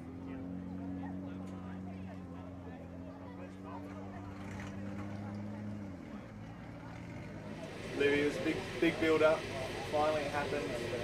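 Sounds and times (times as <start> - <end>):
race car engine running: 0.0 - 11.0.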